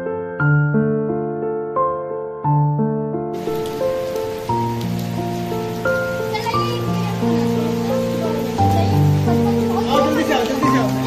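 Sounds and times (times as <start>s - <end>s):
slow keyboard music: 0.0s - 11.0s
steady rain falling: 3.4s - 11.0s.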